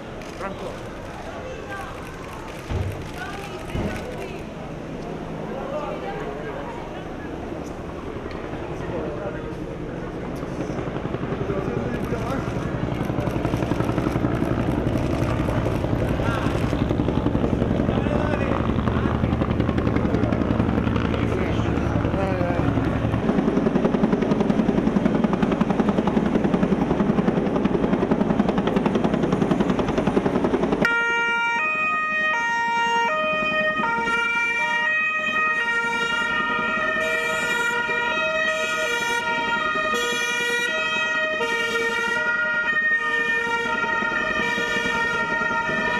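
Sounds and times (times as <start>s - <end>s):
crowd noise: 0.0s - 26.2s
vehicle engine: 10.3s - 25.3s
two-tone police siren: 30.8s - 45.9s.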